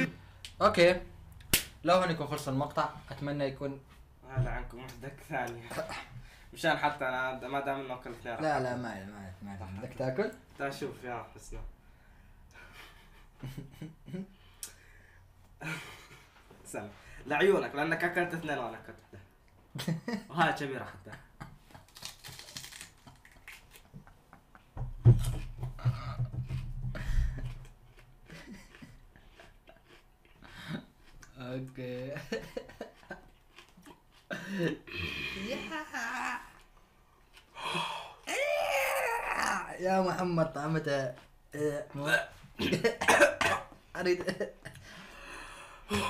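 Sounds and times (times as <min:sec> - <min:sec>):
voice: 0:01.9 - 0:06.0, 0:35.4 - 0:36.6, 0:38.3 - 0:42.3
person chewing raw onion: 0:26.5 - 0:31.5, 0:32.7 - 0:34.3
man coughing: 0:42.6 - 0:43.8.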